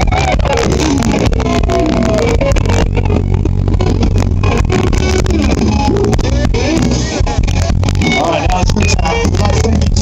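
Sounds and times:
bass guitar: 0:00.0 - 0:10.0
drums: 0:00.0 - 0:10.0
electric guitar: 0:00.0 - 0:10.0.

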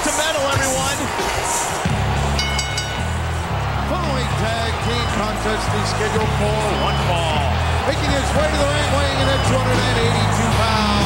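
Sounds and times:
arena crowd cheering: 0:00.0 - 0:11.0.

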